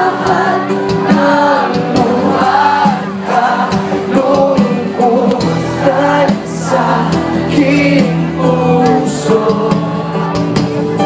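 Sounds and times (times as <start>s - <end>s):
live band playing: 0.0s - 11.0s
person singing: 0.0s - 11.0s.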